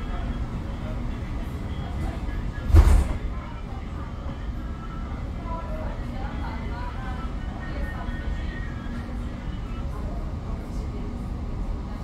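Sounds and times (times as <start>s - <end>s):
tram rumbling on track: 0.0s - 12.0s.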